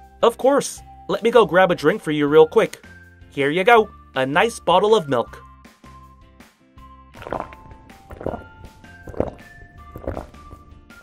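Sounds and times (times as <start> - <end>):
light background music: 0.0 - 11.0
short gulping sounds: 7.2 - 10.7.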